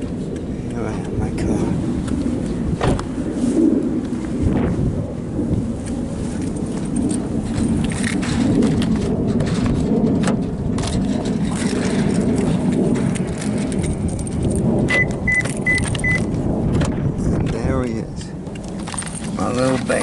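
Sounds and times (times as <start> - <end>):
handling and wind noise: 0.0 - 20.0
car door opening: 2.8 - 3.1
car keys jangling: 13.4 - 16.2, 18.6 - 20.0.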